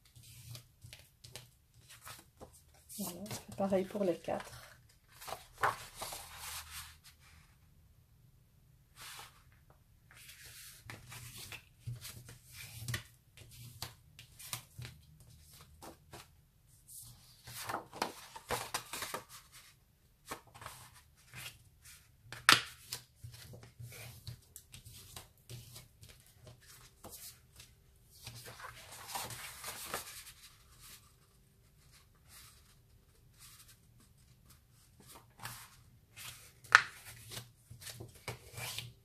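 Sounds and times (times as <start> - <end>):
paper rustling and creasing: 0.1 - 7.4, 22.8 - 38.9.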